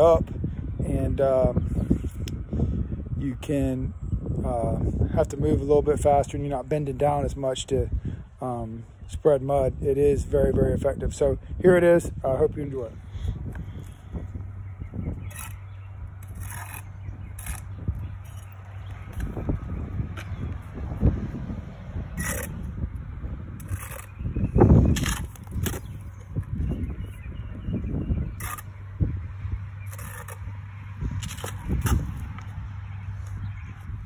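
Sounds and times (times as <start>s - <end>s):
trowel scraping against bricks: 15.1s - 19.4s, 22.2s - 22.7s, 23.6s - 26.5s, 28.3s - 28.8s, 29.8s - 30.5s, 31.2s - 32.2s.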